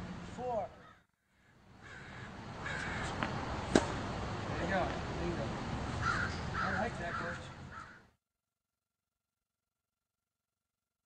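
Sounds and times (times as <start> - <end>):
birds calling: 0.7 - 4.3, 5.4 - 8.2
sharp crack: 3.7 - 4.0.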